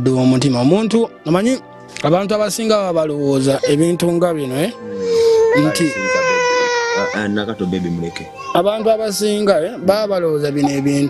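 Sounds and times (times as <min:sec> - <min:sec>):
baby crying: 0:03.2 - 0:09.5.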